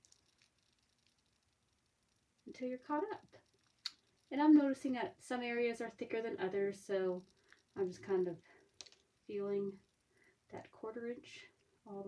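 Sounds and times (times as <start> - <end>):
faint soft ticks from clay: 0.0 - 12.0.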